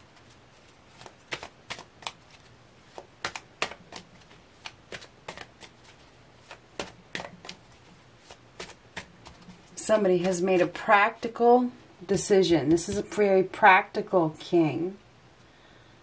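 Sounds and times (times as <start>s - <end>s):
cards being shuffled: 0.0s - 11.3s.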